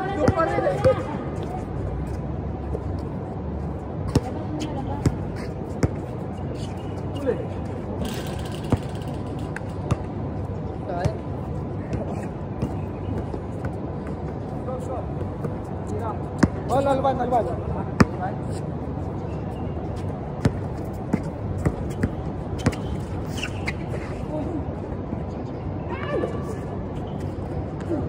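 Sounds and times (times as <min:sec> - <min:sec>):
steady background hum: 0:00.0 - 0:28.0.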